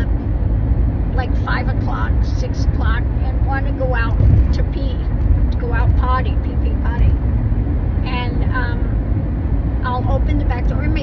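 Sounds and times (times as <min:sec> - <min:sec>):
car road and engine rumble: 0:00.0 - 0:11.0
woman talking: 0:01.2 - 0:07.2, 0:08.0 - 0:09.0, 0:09.8 - 0:11.0.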